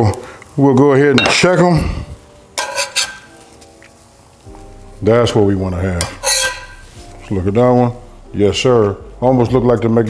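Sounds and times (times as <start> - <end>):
metal spatula scraping a skillet: 2.6 - 3.6, 5.9 - 7.4.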